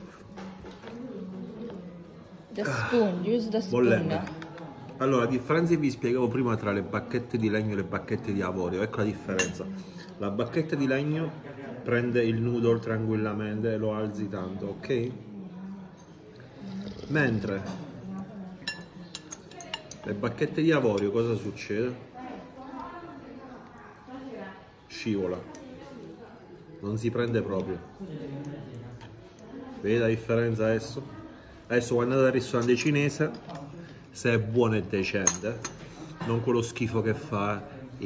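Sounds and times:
chopsticks clinking on porcelain: 0:18.5 - 0:21.6, 0:32.3 - 0:33.7, 0:35.0 - 0:36.0.

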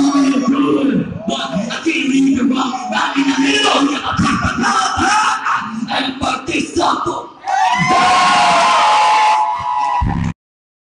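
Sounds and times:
crowd cheering: 0:07.4 - 0:10.4.

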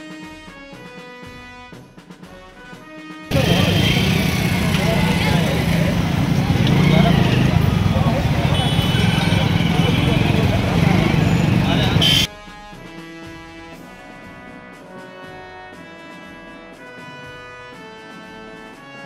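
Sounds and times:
background music: 0:00.0 - 0:19.0
many people talking: 0:03.3 - 0:12.3
traffic and motorcycles rumble: 0:03.3 - 0:12.3.

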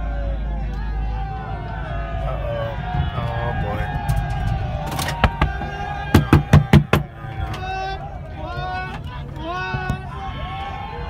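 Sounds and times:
crowd shouting: 0:00.0 - 0:11.0
hard knocks on truck body: 0:05.2 - 0:07.1.

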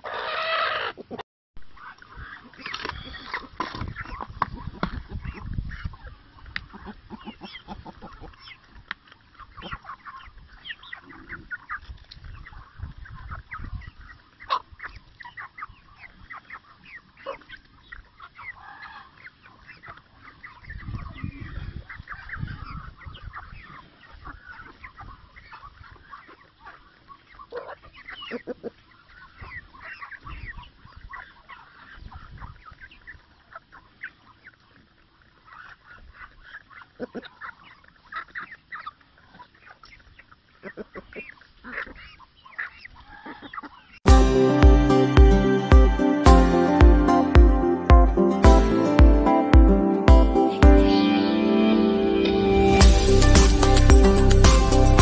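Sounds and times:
chickens clucking: 0:00.0 - 0:55.0
low rumble: 0:51.8 - 0:55.0.

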